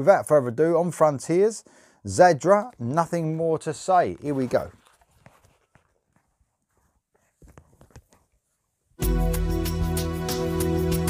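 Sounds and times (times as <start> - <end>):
headphones knocking and rustling: 4.2 - 8.8.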